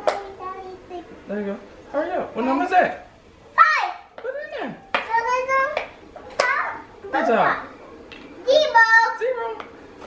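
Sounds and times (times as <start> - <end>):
young child calling: 6.4 - 7.7.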